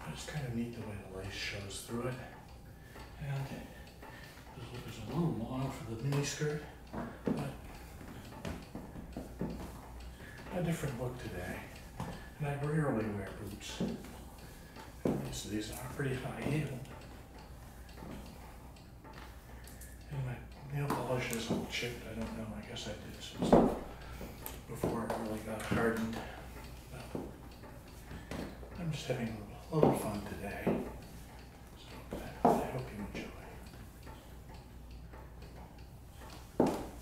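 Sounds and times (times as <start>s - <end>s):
faint ticking: 0.0s - 37.0s.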